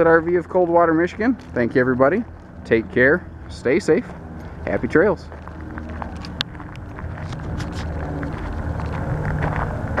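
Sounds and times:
footsteps on gravel: 0.0 - 10.0
wind rumble on microphone: 5.4 - 10.0.

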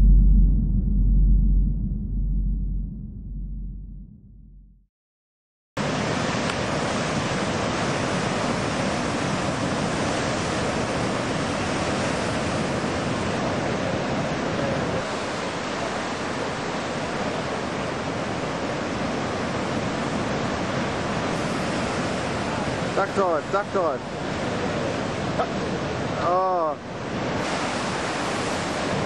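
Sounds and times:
waves breaking on beach: 5.8 - 29.0.

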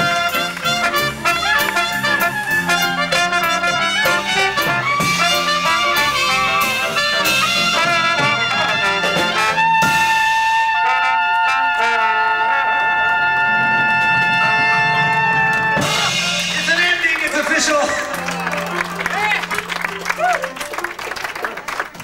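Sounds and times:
drums: 0.0 - 10.8, 13.2 - 20.5
dixieland jazz band playing: 0.0 - 21.9.

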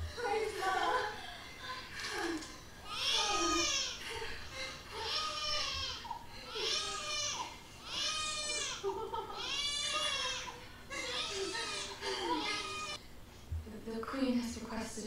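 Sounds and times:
newborn baby crying: 2.8 - 13.0.

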